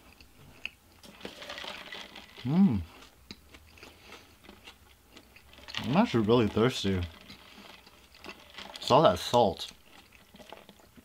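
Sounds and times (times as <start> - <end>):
person speaking: 5.8 - 7.2, 8.8 - 9.8.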